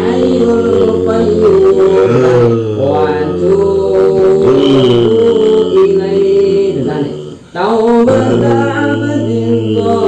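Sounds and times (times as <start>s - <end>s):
man chanting melodic recitation: 1.7s - 9.5s.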